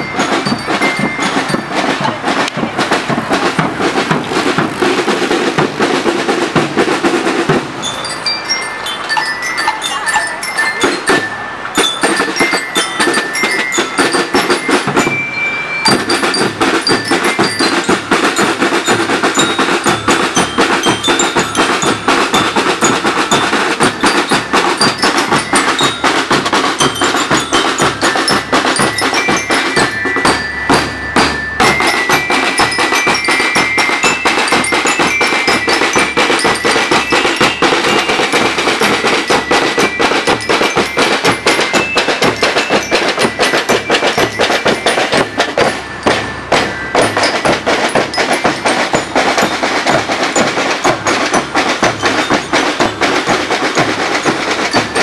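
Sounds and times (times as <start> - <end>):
bell lyres playing melody: 0.0 - 55.0
snare drums and bass drum march: 0.0 - 55.0.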